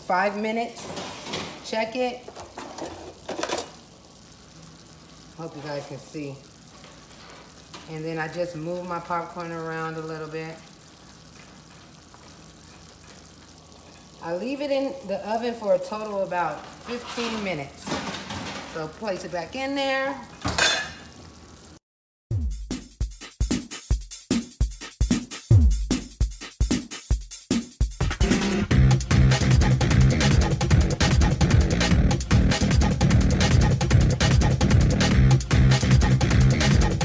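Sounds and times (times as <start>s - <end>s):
metal oven rack scraping: 0.7s - 1.7s, 2.4s - 3.8s, 16.6s - 18.8s.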